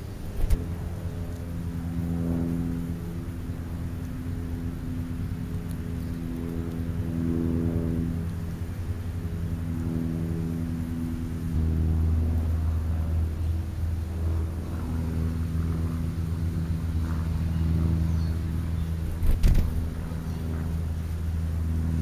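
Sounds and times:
low motor hum: 0.0s - 22.0s
pitched drone: 0.0s - 22.0s.

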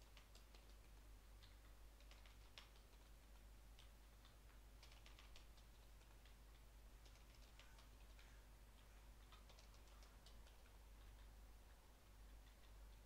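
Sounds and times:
low steady hum: 0.0s - 13.0s
typing on a keyboard: 0.0s - 13.0s.

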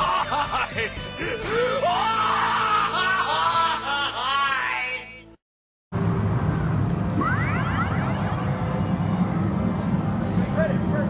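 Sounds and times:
low hum of game machines: 6.0s - 11.0s
rising electronic chirps: 7.0s - 9.6s.

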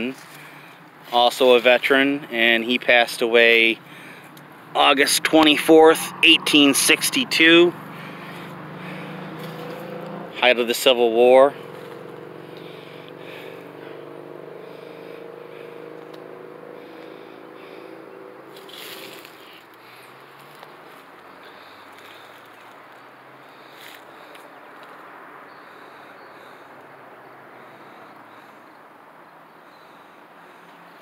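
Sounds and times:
faint outdoor background: 0.0s - 31.0s
vehicle engine hum: 0.0s - 31.0s.

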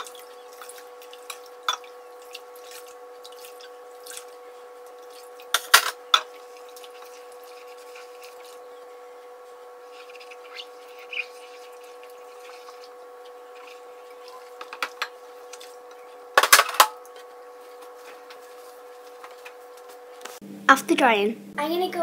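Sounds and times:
dishes rubbed in soapy water: 0.0s - 16.3s, 17.0s - 20.4s
steady hum: 0.0s - 22.0s.

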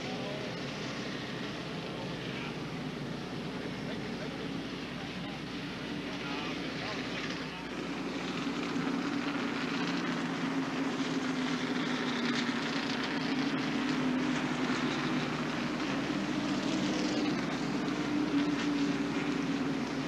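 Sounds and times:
distant race car engines droning: 0.0s - 20.0s.

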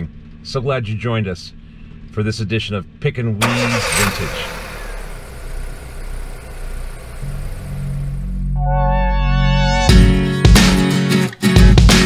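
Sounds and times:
van engine and road noise: 0.0s - 8.6s.

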